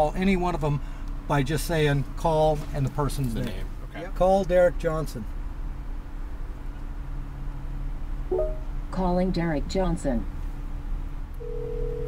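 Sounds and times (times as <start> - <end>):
short electronic tone: 8.3 - 8.7.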